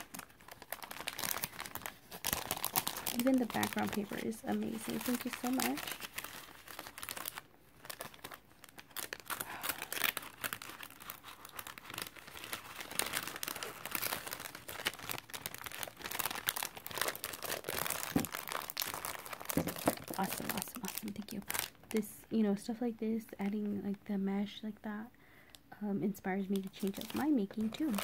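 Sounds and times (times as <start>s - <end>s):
cellophane crinkling: 0.0s - 22.4s, 26.4s - 28.0s.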